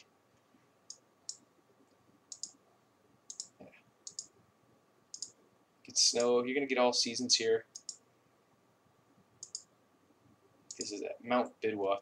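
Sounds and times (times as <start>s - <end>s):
computer mouse clicking: 2.3s - 2.6s, 3.3s - 4.3s, 5.1s - 5.4s, 7.7s - 8.0s, 9.4s - 9.7s.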